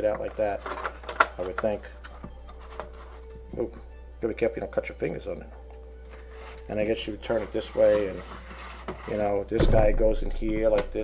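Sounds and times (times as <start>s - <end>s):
plastic parts clicking: 0.0s - 2.9s.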